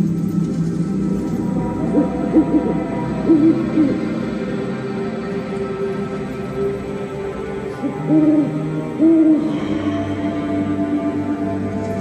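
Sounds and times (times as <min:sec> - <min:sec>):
soundtrack music: 0:00.0 - 0:12.0
hooting calls: 0:01.4 - 0:04.8, 0:07.6 - 0:11.5.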